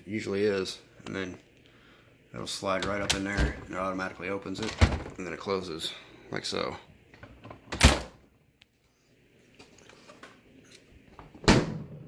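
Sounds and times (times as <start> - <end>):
refrigerator door thump: 11.4 - 12.0.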